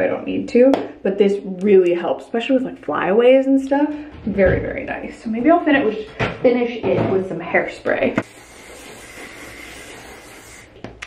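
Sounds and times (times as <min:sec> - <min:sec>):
aerosol spray hissing: 0:08.2 - 0:10.8.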